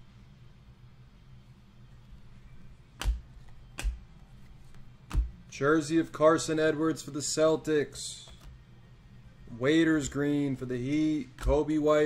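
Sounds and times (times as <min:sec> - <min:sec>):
cards snapping against stack: 0:03.0 - 0:05.4.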